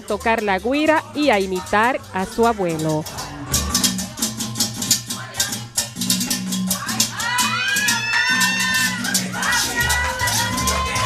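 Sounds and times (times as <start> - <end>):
latin dance music: 0.0 - 11.0
person singing: 6.7 - 11.0.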